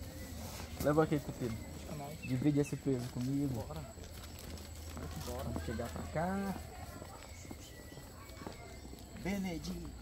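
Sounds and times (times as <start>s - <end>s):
footsteps on pavement: 0.0s - 10.0s.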